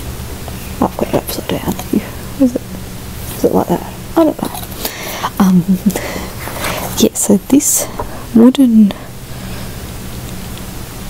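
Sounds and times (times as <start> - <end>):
faint low hum: 0.0 - 11.0
steady hiss: 0.0 - 11.0.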